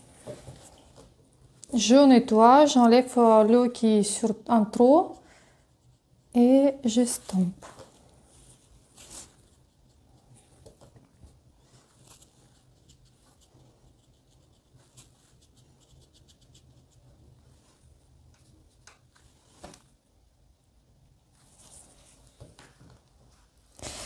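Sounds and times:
paintbrush rustling on paper: 4.1s - 20.0s, 21.3s - 24.0s.

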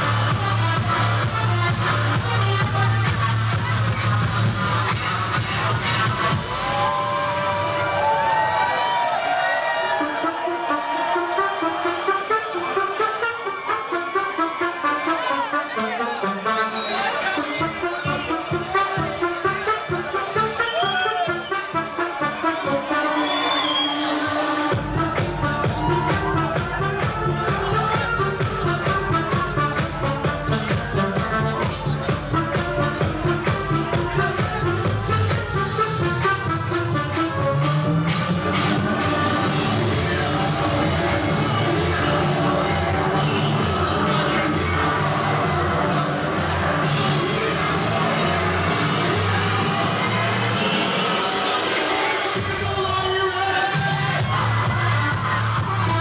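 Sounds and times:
electronic dance music: 0.0s - 56.0s
crowd cheering: 3.6s - 56.0s
trumpet playing bending notes: 9.7s - 37.6s.

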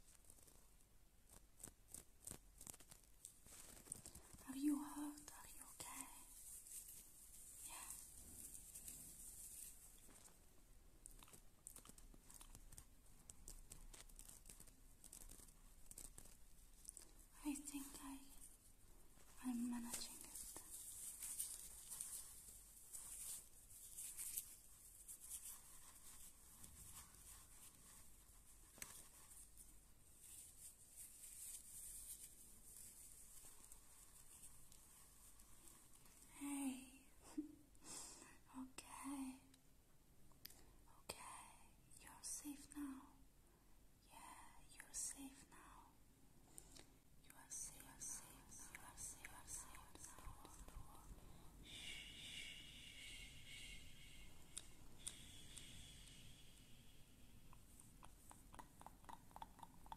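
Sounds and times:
breathy whispering: 3.9s - 8.8s, 15.4s - 18.6s, 19.2s - 24.4s, 35.0s - 39.6s, 44.0s - 46.0s, 46.7s - 59.9s.

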